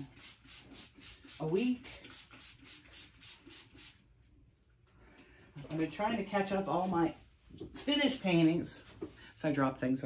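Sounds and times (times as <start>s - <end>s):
back-and-forth rubbing strokes: 0.0s - 4.4s, 5.8s - 9.6s.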